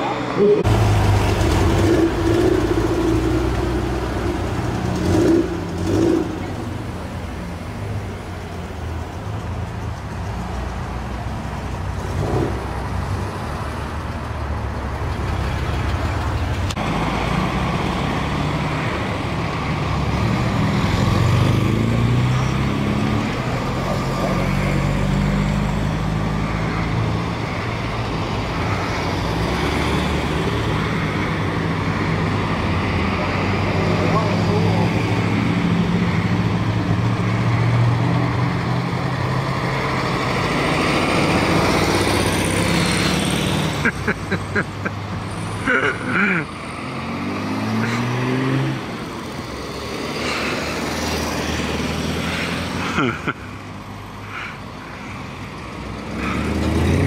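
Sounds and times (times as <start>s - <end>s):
car engines revving: 0.0s - 57.0s.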